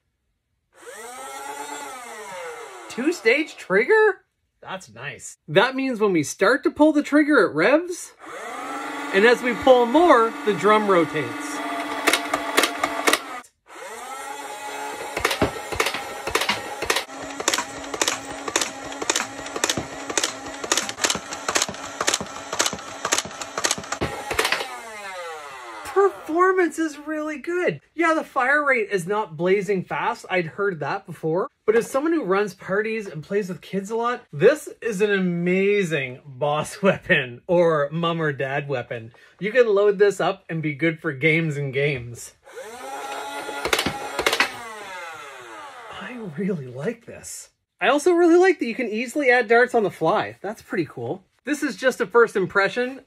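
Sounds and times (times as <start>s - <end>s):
flywheel motors whining: 0.8s - 3.6s, 8.2s - 26.5s, 42.4s - 46.3s.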